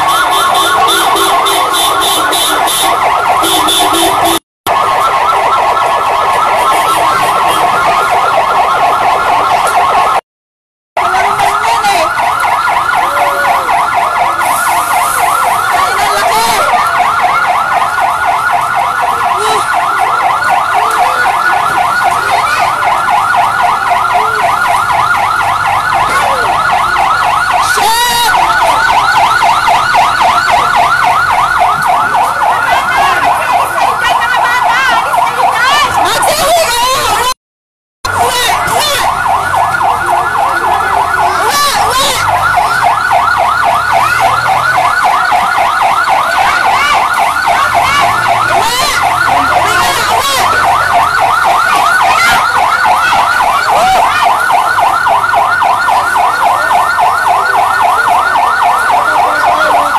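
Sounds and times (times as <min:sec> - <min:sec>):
siren yelping: 0:00.0 - 0:10.2, 0:11.0 - 0:37.4, 0:38.0 - 0:59.9.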